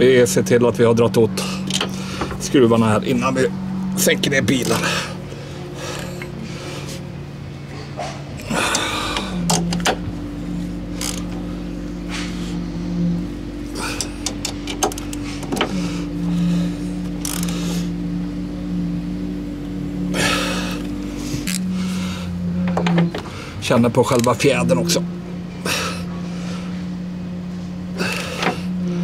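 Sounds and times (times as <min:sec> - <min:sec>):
low hum with pulsing tone: 0:00.0 - 0:29.0
ratchet wrench clicking: 0:17.2 - 0:17.6.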